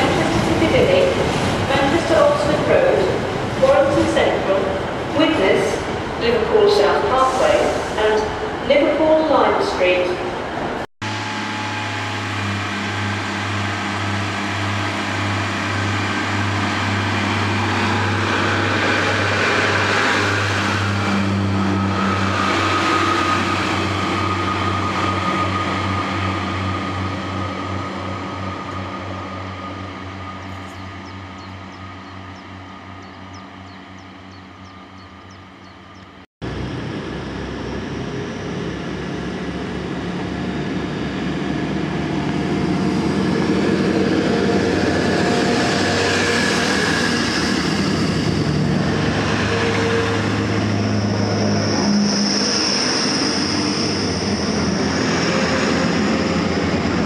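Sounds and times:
diesel railbus engine throbbing: 0.0s - 57.0s
diesel train engine running: 0.0s - 57.0s.

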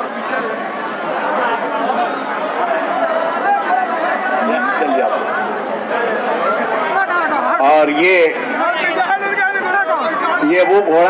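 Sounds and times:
crowd babble: 0.0s - 11.0s
man's voice: 6.4s - 11.0s.

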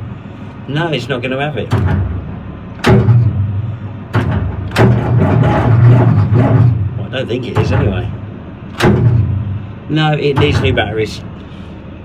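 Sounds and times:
low engine rumble: 0.0s - 12.0s
starter clunk: 1.6s - 11.1s.

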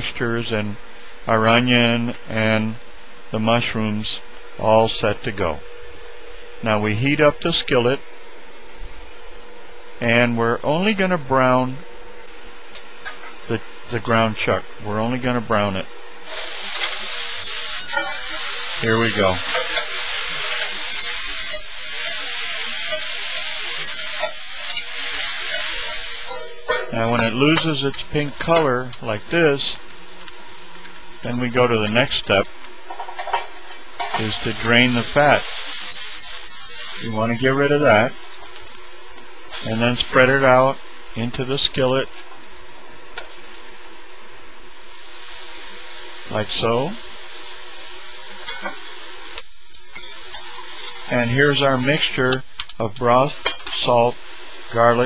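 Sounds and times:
ground meat sizzling in a skillet: 16.3s - 31.2s, 32.5s - 41.1s, 44.7s - 55.0s.

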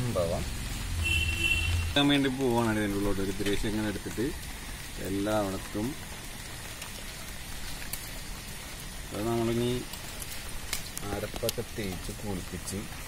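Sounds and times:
faint hiss: 0.0s - 13.0s
man speaking: 11.0s - 13.0s.

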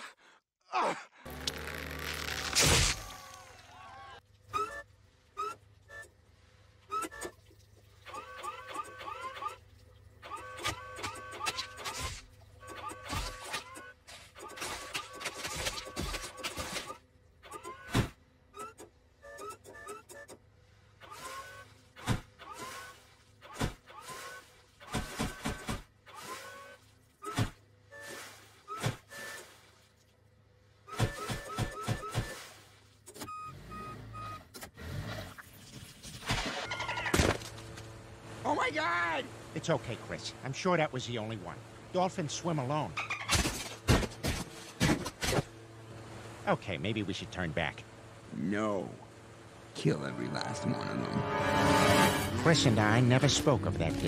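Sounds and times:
engine hum: 1.2s - 54.0s
short rising squeaks: 1.3s - 3.7s, 4.5s - 6.2s, 6.9s - 7.4s, 10.2s - 20.4s, 21.0s - 29.6s
forklift reversing alarm beeping: 4.6s - 6.2s, 17.5s - 20.4s, 21.2s - 21.7s, 33.2s - 34.5s
forklift humming: 45.5s - 54.0s.

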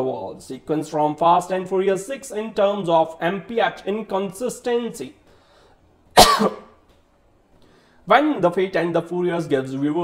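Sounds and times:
man coughing: 6.2s - 6.8s.

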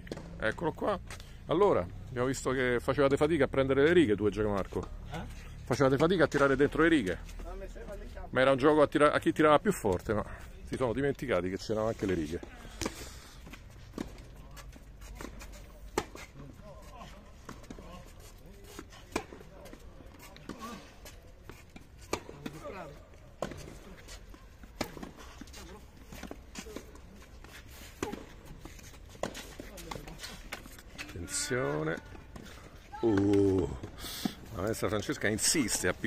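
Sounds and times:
racket hitting tennis ball: 23.3s - 31.1s.

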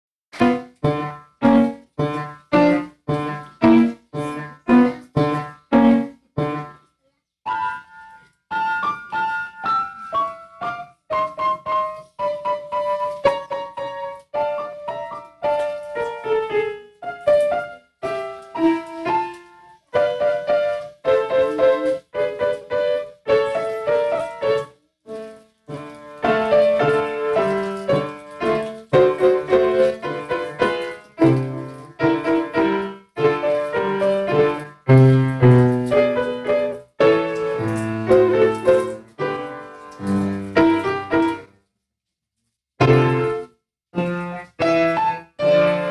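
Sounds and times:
piano playing: 0.3s - 6.8s, 7.5s - 41.5s, 42.8s - 45.9s.

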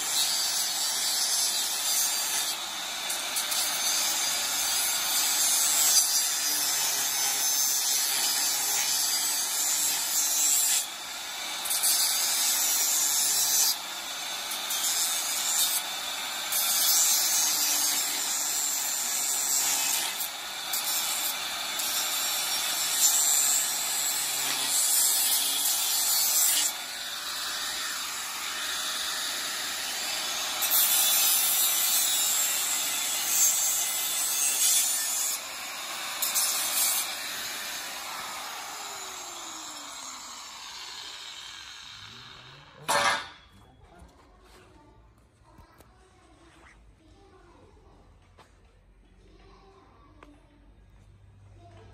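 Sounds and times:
angle grinder on metal pipe: 0.0s - 43.5s.

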